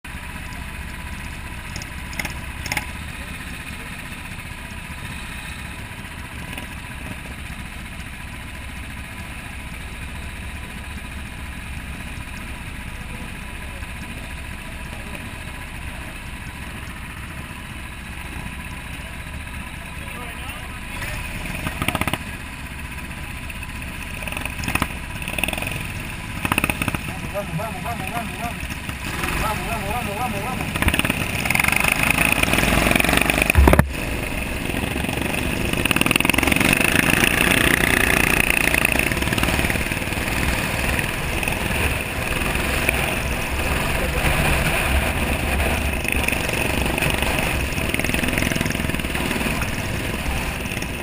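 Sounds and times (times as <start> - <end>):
go-kart engines running: 0.1 - 51.0
indistinct voices: 26.6 - 32.4.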